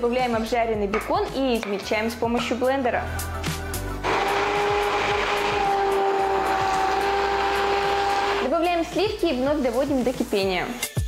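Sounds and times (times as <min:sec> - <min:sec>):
hand blender running: 0:04.0 - 0:08.5.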